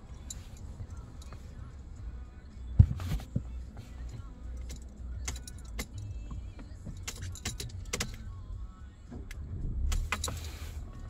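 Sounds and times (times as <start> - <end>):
car cabin low hum: 0.0 - 11.0
keys jangling: 4.0 - 6.2, 6.8 - 8.2.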